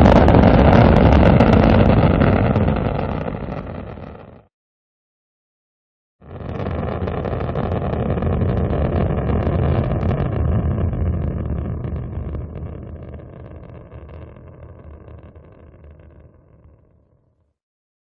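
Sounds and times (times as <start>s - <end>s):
rocket engine rumble: 0.0s - 4.5s, 6.2s - 16.8s.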